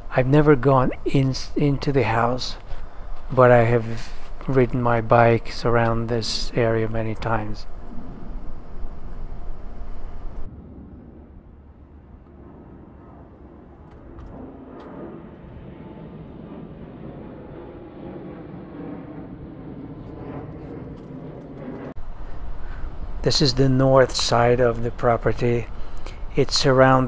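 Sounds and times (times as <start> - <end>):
loud steady rushing noise: 0.0 - 19.6
distant traffic rumble: 0.0 - 27.0.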